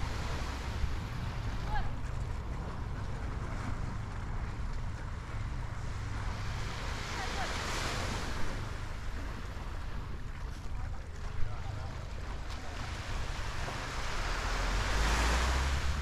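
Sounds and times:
small waves on a beach: 0.0 - 16.0
wind rumbling on microphone: 0.0 - 16.0.

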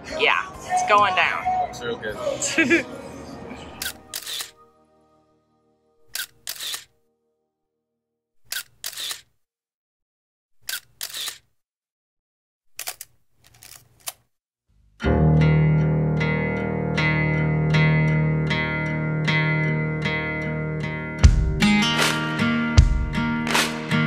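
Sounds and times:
held musical chord: 1.1 - 6.0, 15.0 - 21.2
camera shutter double clicks: 3.8 - 4.5, 6.1 - 6.9, 8.5 - 9.3, 10.6 - 11.5.

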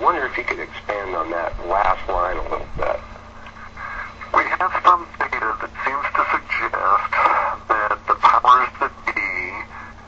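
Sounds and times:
person talking: 0.0 - 3.1, 4.2 - 9.9
faint steady hum: 0.0 - 10.0.

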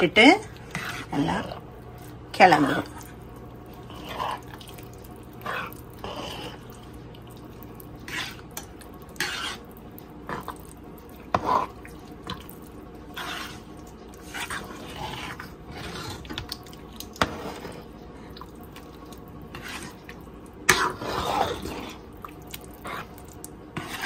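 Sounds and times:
milk pudding bubbling in a pot: 0.0 - 24.0.

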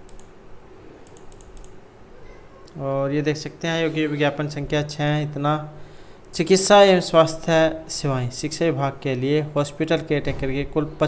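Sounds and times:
faint computer mouse clicks: 0.0 - 0.3, 1.0 - 1.8.

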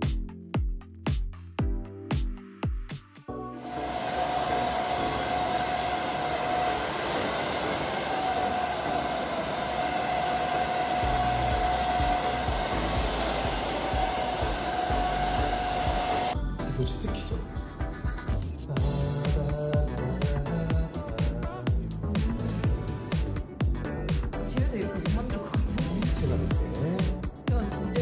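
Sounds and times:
hair dryer blowing: 3.6 - 16.4.

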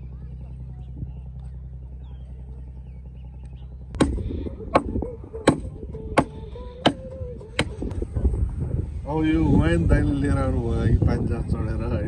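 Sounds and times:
low rumble: 0.0 - 6.6, 7.2 - 12.0
sharp knocks: 4.0 - 7.0.

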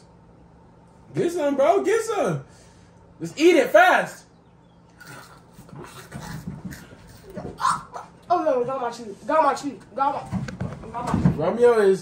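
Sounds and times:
person breathing: 2.5 - 3.0
low grunts or hums: 5.0 - 8.0.

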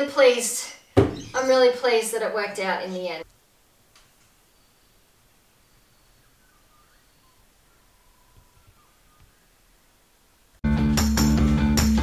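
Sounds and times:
distant bird calls: 0.0 - 3.3, 4.1 - 10.4.

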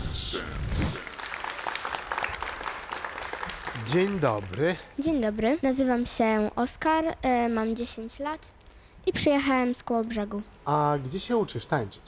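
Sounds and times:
light applause: 0.9 - 4.9.

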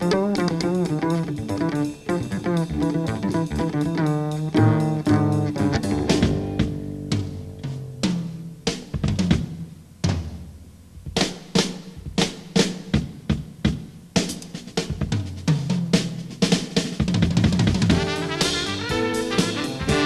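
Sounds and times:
drum kit playing: 0.0 - 20.0.

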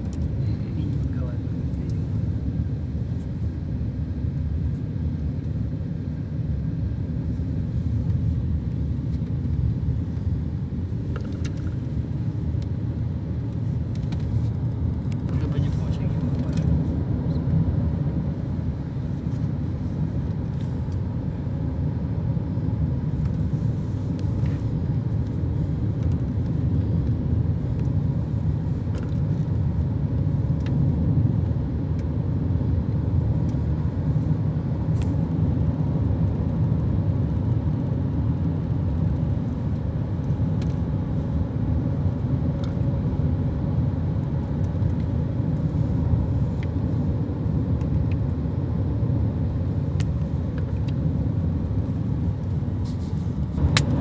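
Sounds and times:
tyre and wind noise in car: 0.0 - 54.0.

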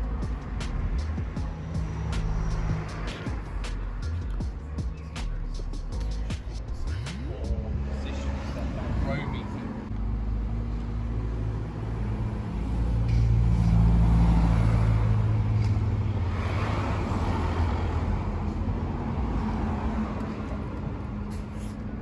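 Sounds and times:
car tyre noise passing: 6.0 - 22.0.

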